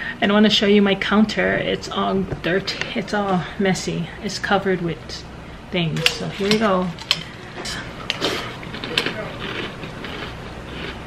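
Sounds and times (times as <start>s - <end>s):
cereal crunching and chewing: 8.2s - 11.0s.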